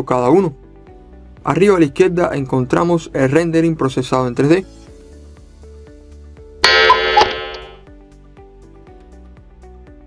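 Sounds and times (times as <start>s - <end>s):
soft background music: 0.0s - 7.1s, 7.8s - 10.0s
bright ringing sound effect: 6.6s - 7.8s.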